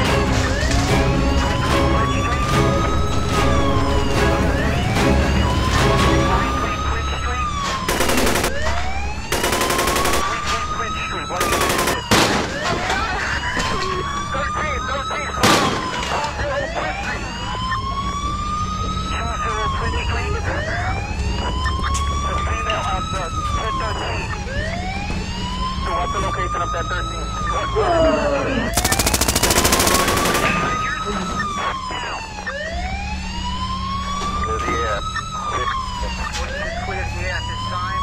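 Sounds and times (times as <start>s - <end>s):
police siren wailing: 0.0s - 38.0s
rapid gunfire: 7.9s - 12.8s, 15.4s - 16.0s, 28.8s - 30.8s
single gunshots: 11.4s - 12.8s, 15.4s - 16.3s.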